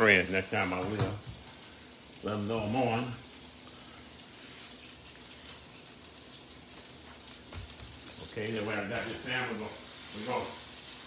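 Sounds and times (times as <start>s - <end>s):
fish sizzling in a pan: 0.0s - 11.0s.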